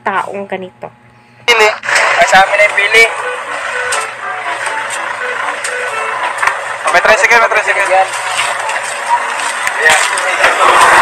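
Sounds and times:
steady background hum: 0.0s - 11.0s.

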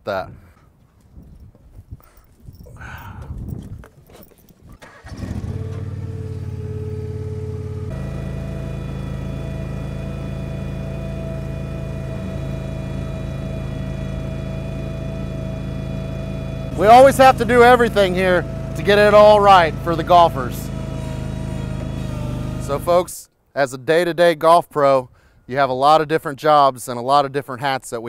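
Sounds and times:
mower engine running: 4.8s - 23.1s.

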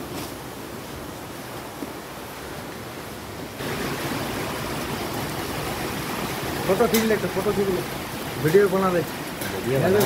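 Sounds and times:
rain falling: 0.0s - 10.0s.

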